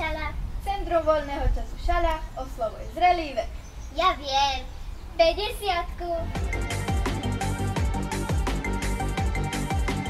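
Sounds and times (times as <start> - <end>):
girl speaking: 0.0 - 6.4.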